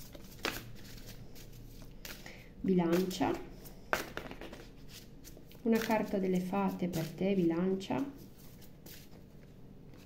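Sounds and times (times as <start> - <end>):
cards being shuffled: 0.0 - 2.3, 2.9 - 7.2.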